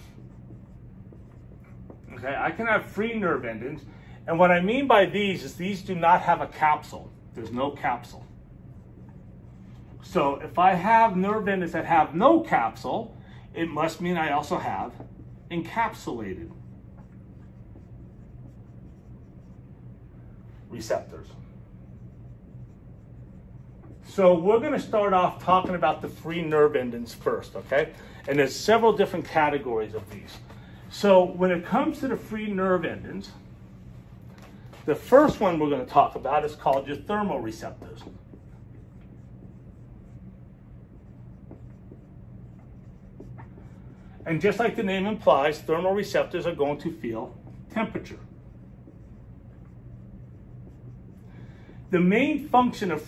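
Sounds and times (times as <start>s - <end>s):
marker writing on whiteboard: 0.0s - 33.4s, 34.2s - 53.0s
steady low hum: 0.0s - 53.0s.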